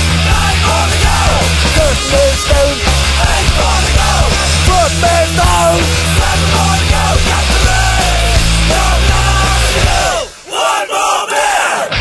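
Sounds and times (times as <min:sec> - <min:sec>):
group of men shouting together: 0:06.3 - 0:12.0.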